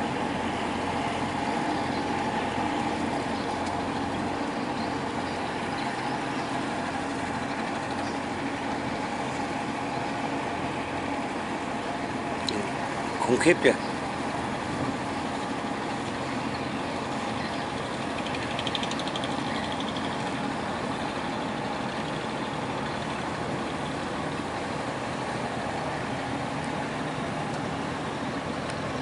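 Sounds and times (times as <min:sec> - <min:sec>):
boat engine droning: 0:00.0 - 0:29.0.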